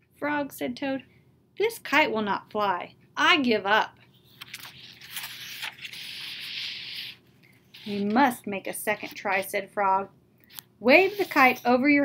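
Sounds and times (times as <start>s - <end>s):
book page turning: 4.1s - 9.4s.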